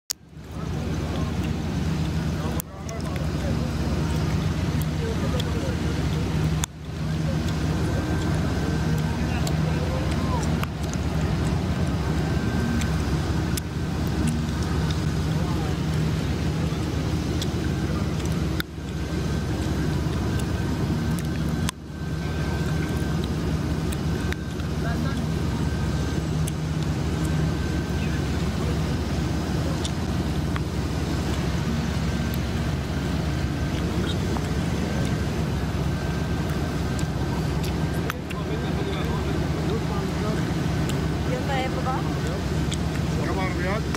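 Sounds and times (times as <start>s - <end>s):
car engines idling: 0.1s - 43.9s
faint voices talking: 0.2s - 43.9s.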